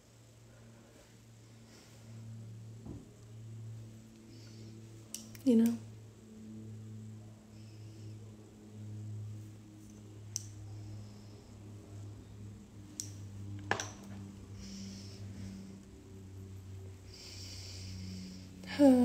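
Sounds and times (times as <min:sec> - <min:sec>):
steady low hum: 0:00.0 - 0:19.0
light clicks of makeup tools: 0:05.0 - 0:05.8, 0:09.8 - 0:10.9, 0:12.8 - 0:14.3.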